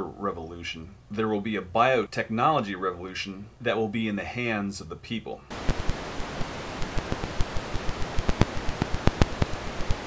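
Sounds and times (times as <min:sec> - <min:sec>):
steady hiss: 0:00.0 - 0:10.0
crackles and pops: 0:05.5 - 0:10.0.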